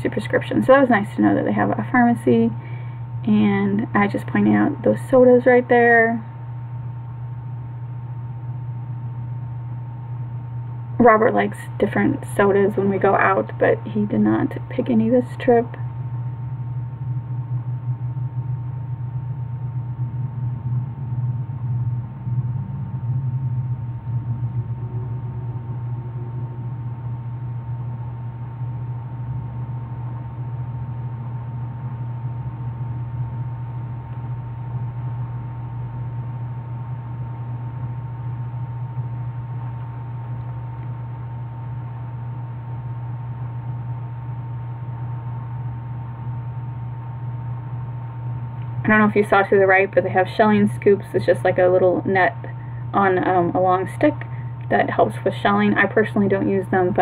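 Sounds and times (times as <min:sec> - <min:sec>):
faint constant higher tone: 0:00.0 - 0:57.0
steady low hum: 0:00.0 - 0:57.0.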